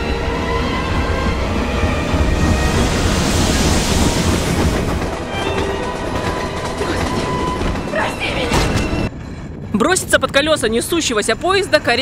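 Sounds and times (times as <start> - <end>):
dramatic music: 0.0 - 12.0
steam locomotive rumble: 0.0 - 12.0
steam hissing: 2.1 - 5.1.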